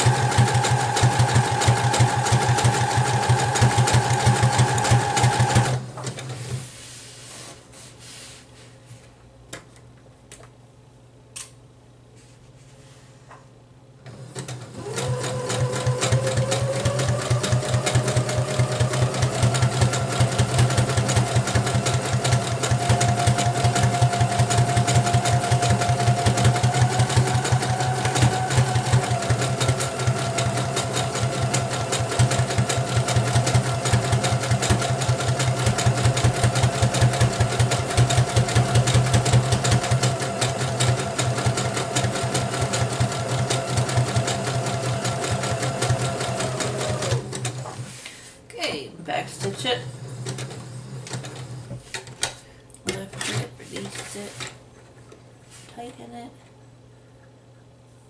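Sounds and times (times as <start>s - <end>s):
sewing machine running: 0.0s - 6.6s, 14.1s - 47.9s, 49.3s - 51.7s.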